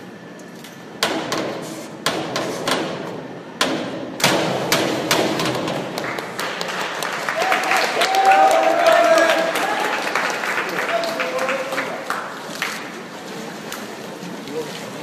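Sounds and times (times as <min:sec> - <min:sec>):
diving board thuds: 0:01.0 - 0:06.0.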